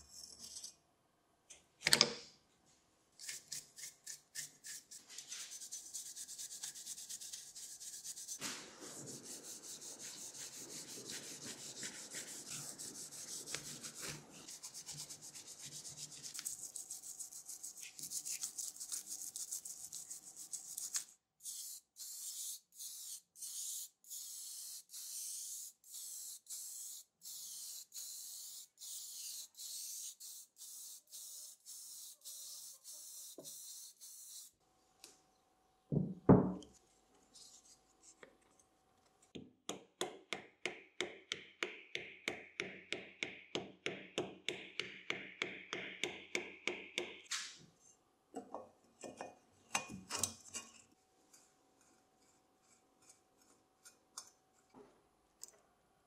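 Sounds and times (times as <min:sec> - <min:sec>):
toothbrush scrubbing metal: 0:03.2 - 0:34.5
aerosol spray can hissing: 0:21.4 - 0:34.5.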